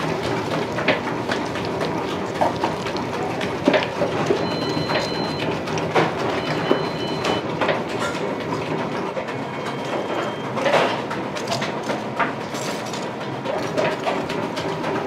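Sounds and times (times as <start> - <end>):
bread rolls deep-frying in oil: 0.0 - 15.0.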